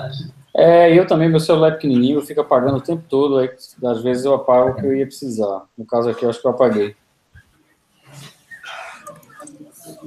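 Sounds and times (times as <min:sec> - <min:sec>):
faint voices over video call: 0:08.1 - 0:10.0.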